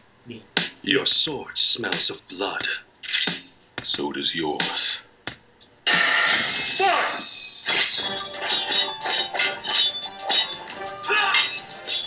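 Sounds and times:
background music: 0.6s - 12.0s.

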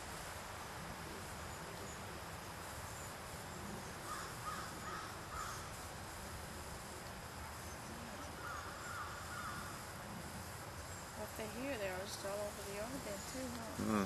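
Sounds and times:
faint hum of insects: 0.0s - 14.0s
distant bird calls: 1.1s - 14.0s.

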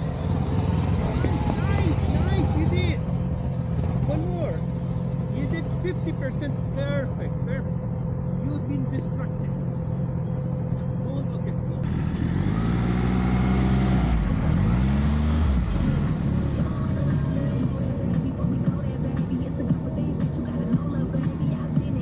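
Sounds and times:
motorcycle engine revving: 0.0s - 22.0s.

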